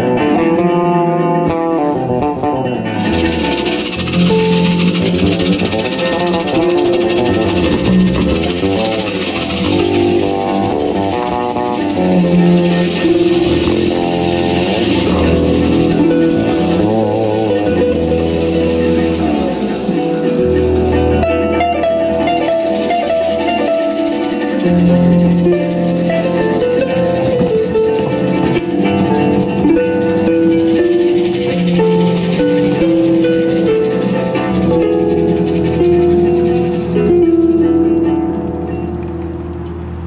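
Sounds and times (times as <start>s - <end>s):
plucked harp notes: 0.0s - 39.8s
sliding bass line: 0.0s - 40.0s
shaker hiss: 3.0s - 38.3s.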